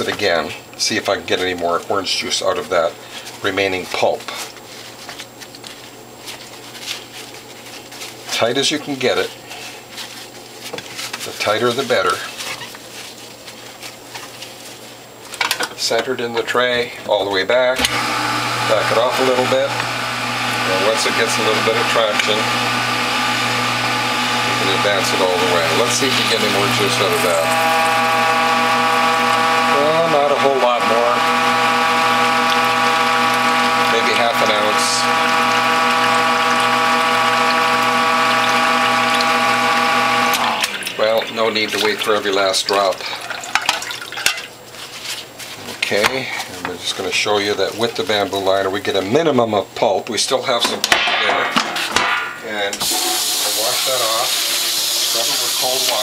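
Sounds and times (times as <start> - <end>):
cloth rustling: 3.1 - 8.4, 9.2 - 15.4, 43.8 - 46.6
hydraulic press motor humming: 17.8 - 41.3, 52.8 - 56.0.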